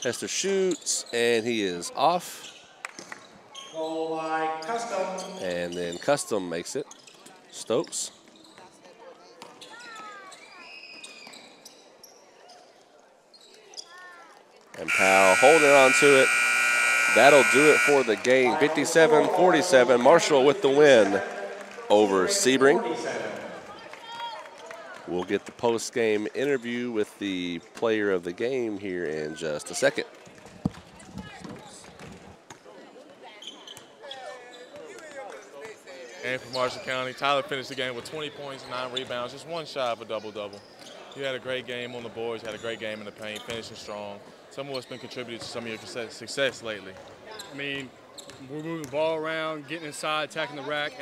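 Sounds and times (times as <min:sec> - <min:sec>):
faint voices: 0:14.8 - 0:24.0.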